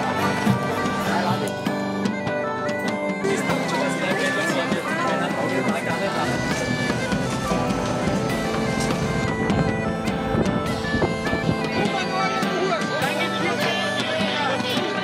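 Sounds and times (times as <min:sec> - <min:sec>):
bagpipe melody over drone: 0:00.0 - 0:15.0.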